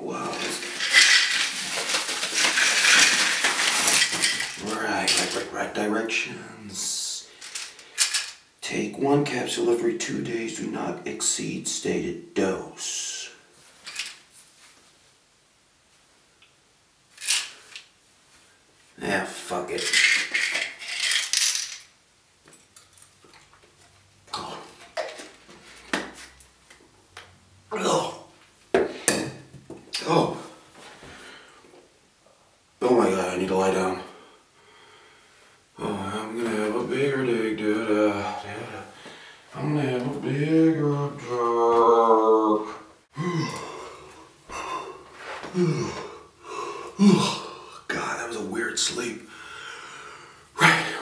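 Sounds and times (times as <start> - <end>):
pills rattling in container: 0.2 - 5.5, 7.4 - 8.4, 19.7 - 21.9
envelope tearing and crinkling: 0.3 - 5.4.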